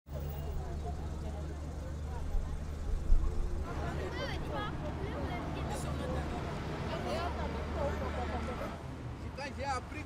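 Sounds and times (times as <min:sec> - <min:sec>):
road traffic rumble: 0:00.1 - 0:10.0
voices chattering: 0:00.1 - 0:10.0.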